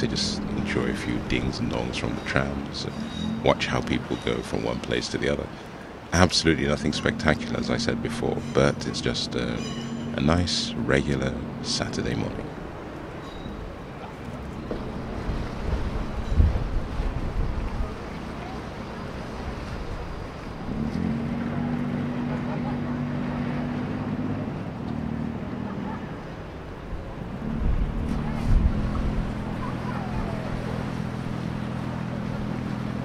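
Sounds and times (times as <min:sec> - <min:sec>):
boat engine droning: 0:00.0 - 0:33.0
wind buffeting microphone: 0:12.5 - 0:18.4, 0:26.8 - 0:32.7.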